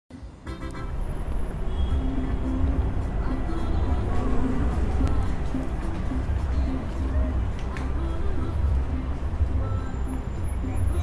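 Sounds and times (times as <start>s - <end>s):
low rumble of traffic: 0.2s - 11.0s.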